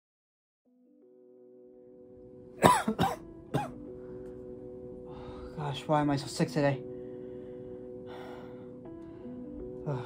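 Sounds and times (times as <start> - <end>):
soft background music: 0.7 - 10.0
man coughing: 2.6 - 3.8.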